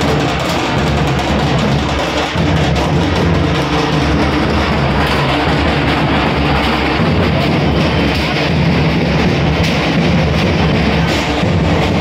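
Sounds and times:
music with loud steady drumming: 0:00.0 - 0:12.0.

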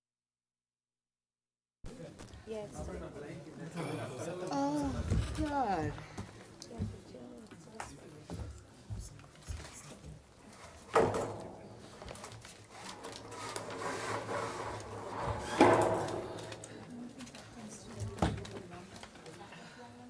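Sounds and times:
people talking indistinctly: 0:01.9 - 0:09.2.

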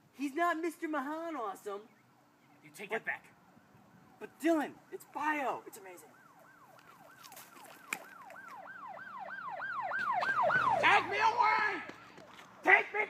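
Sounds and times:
lower siren sweeps: 0:03.9 - 0:11.9
siren yelping: 0:04.0 - 0:12.2.

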